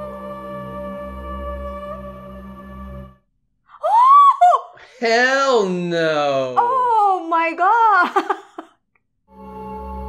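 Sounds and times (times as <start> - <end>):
music: 0.0 - 3.3, 9.3 - 10.0
person crying out: 3.8 - 7.1.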